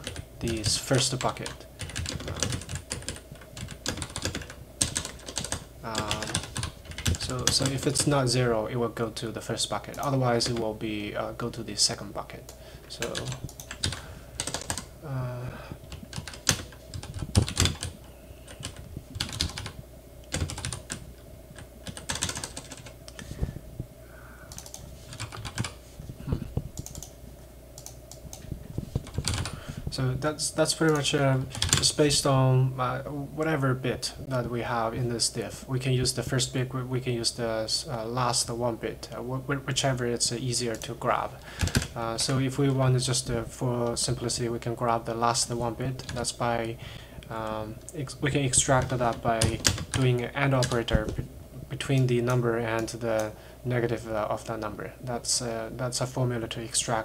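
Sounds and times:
computer keyboard typing: 0.0s - 8.2s, 12.5s - 14.9s, 15.8s - 23.2s, 24.5s - 25.8s, 26.8s - 27.2s, 27.8s - 28.4s, 29.0s - 29.6s, 30.8s - 32.0s, 41.6s - 42.4s, 48.6s - 51.2s.

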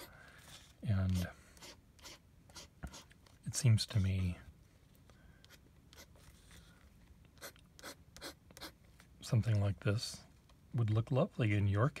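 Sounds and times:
pen nib scratching on card: 1.1s - 3.1s, 7.4s - 8.8s.

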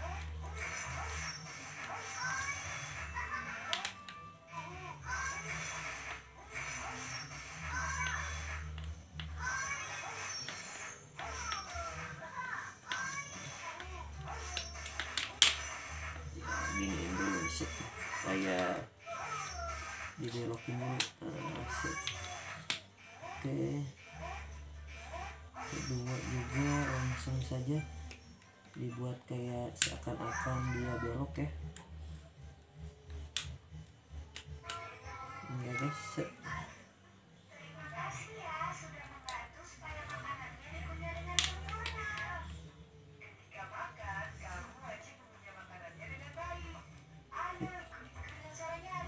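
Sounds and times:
music: 0.0s - 49.0s
sharp clicks of small parts: 12.8s - 15.7s, 21.0s - 22.9s.

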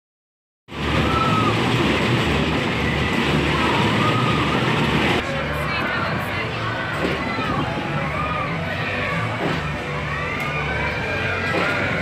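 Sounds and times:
rising and falling high tones: 0.7s - 5.3s
crowd voices: 0.7s - 12.0s
ride machinery: 0.7s - 12.0s.

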